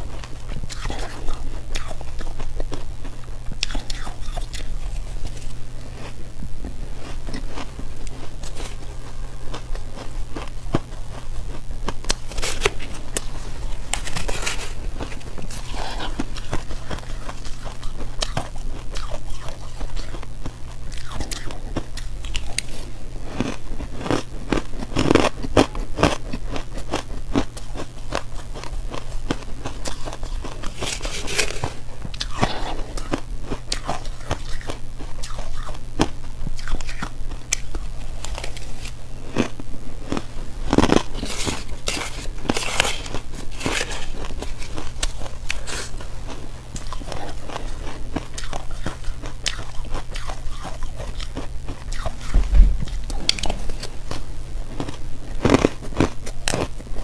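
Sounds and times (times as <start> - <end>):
crunching and chewing ice: 0.0 - 57.0
steady low hum: 0.0 - 57.0.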